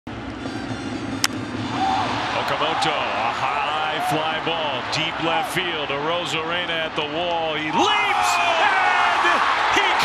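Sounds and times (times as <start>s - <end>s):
ballpark crowd noise: 0.2s - 10.0s.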